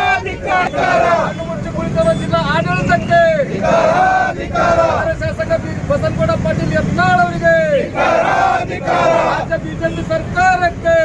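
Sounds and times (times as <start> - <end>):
crowd shouting a slogan: 0.0 - 1.5, 3.2 - 5.2, 7.4 - 9.8.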